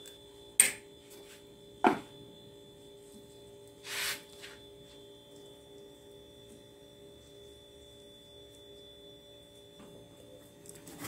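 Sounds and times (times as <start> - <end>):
electrical hum with high whine: 0.0 - 11.0.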